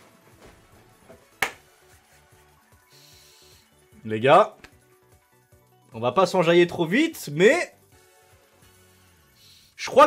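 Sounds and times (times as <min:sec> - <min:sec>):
slot game celebration music: 0:00.0 - 0:09.2.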